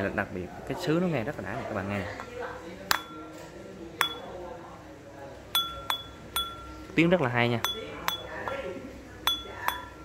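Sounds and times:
ceramic bowl tapped ringing: 2.9s - 3.4s, 4.0s - 4.4s, 5.5s - 6.9s, 7.6s - 10.0s.

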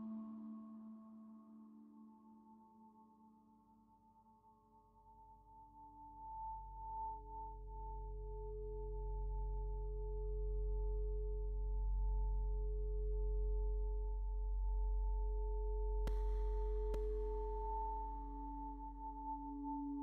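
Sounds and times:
deep low hum: 6.7s - 20.0s.

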